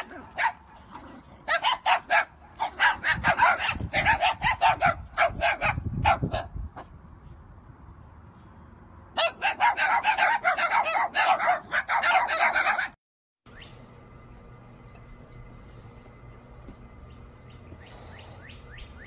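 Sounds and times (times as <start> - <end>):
dogs barking rapidly: 0.0 - 6.9, 9.1 - 13.0, 17.0 - 19.0.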